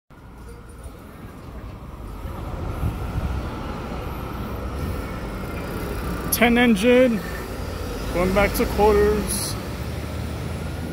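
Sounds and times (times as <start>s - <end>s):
fire engine diesel rumbling: 0.8s - 10.9s.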